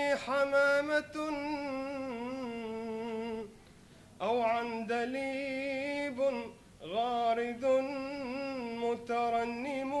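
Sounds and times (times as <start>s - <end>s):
man chanting: 0.0s - 3.5s, 4.2s - 10.0s.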